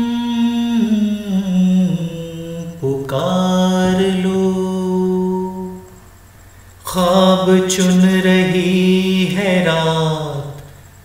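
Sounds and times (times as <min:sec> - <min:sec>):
man humming: 0:00.0 - 0:06.0.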